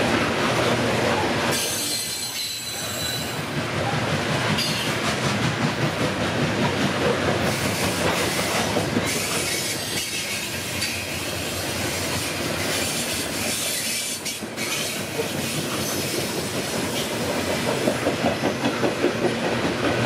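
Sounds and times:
train wheels rolling on rails: 0.0s - 20.0s
high-pitched wheel squeal: 1.6s - 3.4s.

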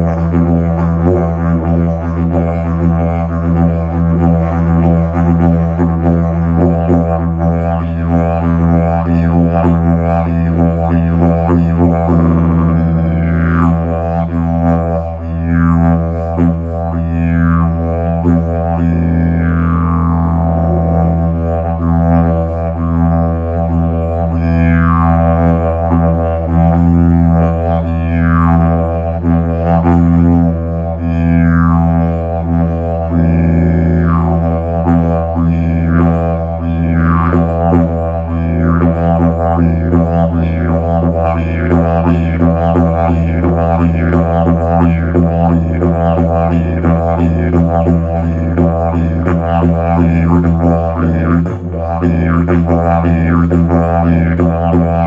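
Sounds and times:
didgeridoo droning: 0.0s - 55.0s.

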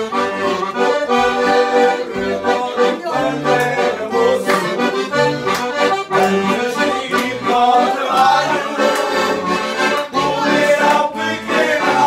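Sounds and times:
accordions playing dance tune: 0.0s - 12.0s.

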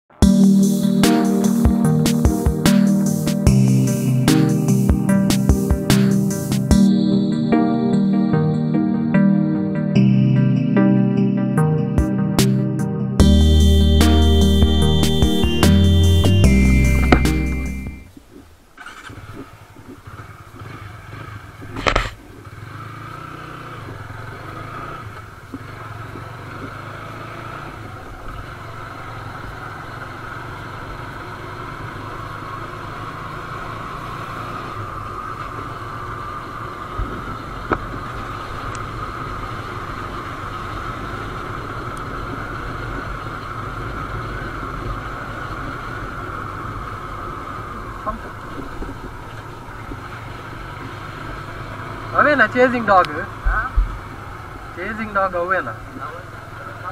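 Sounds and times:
wind and road noise: 16.4s - 56.9s
sharp knock: 17.0s - 17.5s
motorcycle engine running: 18.8s - 54.7s.

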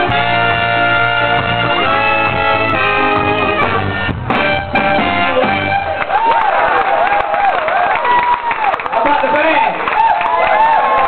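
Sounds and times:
ska band with horns playing: 0.0s - 6.2s
audience cheering and whooping: 5.7s - 11.0s.

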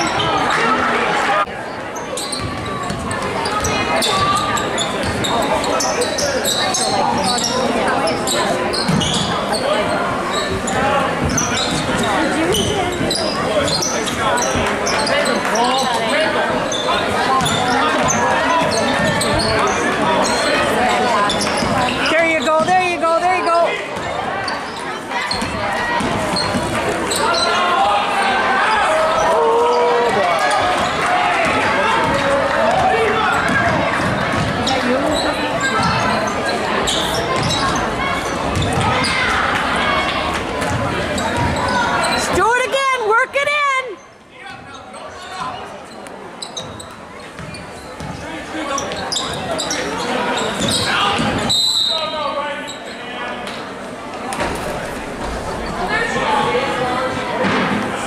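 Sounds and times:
sneakers squeaking: 0.0s - 0.9s, 1.5s - 42.7s, 44.0s - 53.7s
spectator chatter echoing: 0.0s - 58.0s.

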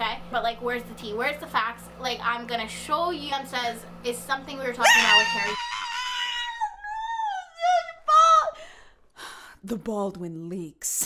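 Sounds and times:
woman's high-pitched whine: 4.8s - 8.6s.

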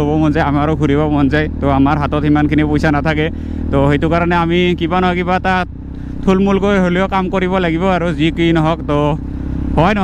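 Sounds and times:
man talking: 0.0s - 10.0s
motorcycle engine droning: 0.0s - 10.0s.

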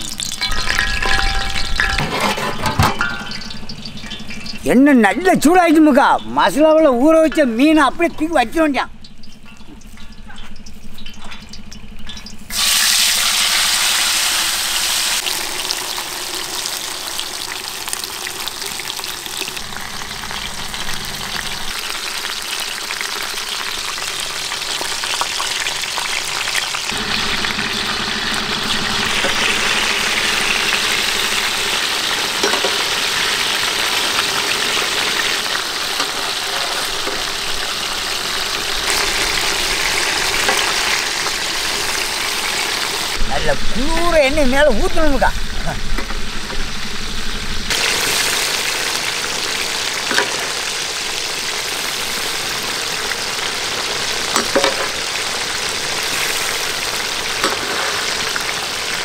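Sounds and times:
fish sizzling in hot oil: 0.0s - 2.0s, 2.6s - 5.2s, 8.9s - 59.0s.

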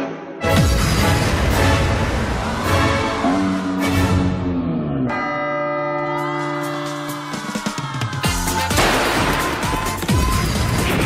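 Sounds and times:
bell-like music: 5.0s - 8.8s
sharp hit: 8.7s - 9.6s.

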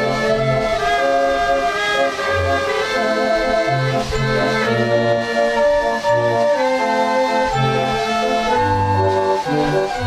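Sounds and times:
fairground organ chords: 0.0s - 10.0s.

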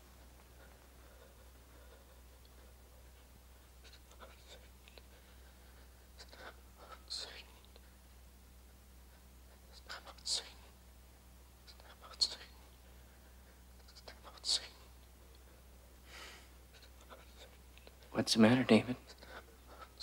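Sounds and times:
low steady hum: 0.0s - 20.0s
man whispering: 3.8s - 5.1s, 6.1s - 7.8s, 9.6s - 10.8s, 11.6s - 12.8s, 13.8s - 15.0s, 16.7s - 20.0s.

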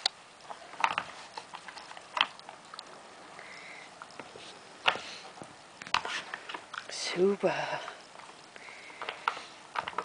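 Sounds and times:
wooden puzzle knocks and clicks: 8.9s - 10.0s.

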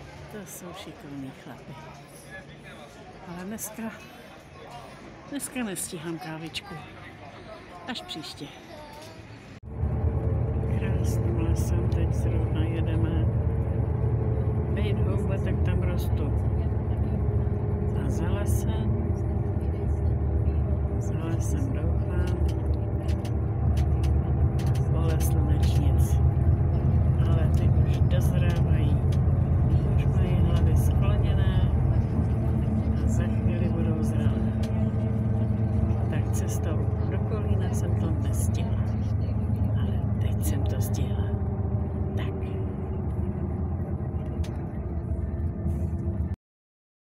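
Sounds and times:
bus engine and road rumble: 0.0s - 46.4s
indistinct talking: 0.0s - 46.4s.

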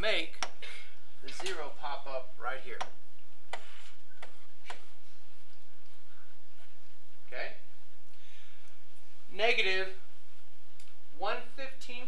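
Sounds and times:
faint electrical hum: 0.0s - 12.0s
stylus tapping tablet screen: 2.8s - 5.0s.

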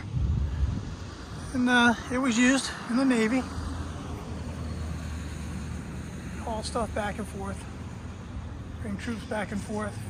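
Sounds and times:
steady low rumble: 0.0s - 3.2s.

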